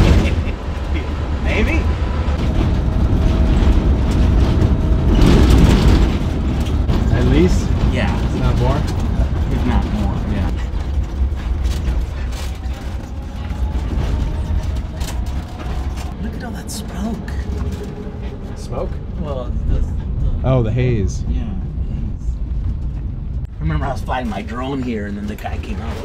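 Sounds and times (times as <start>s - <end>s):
low road rumble: 0.0s - 26.0s
clicks rattles and creaks: 2.3s - 16.2s.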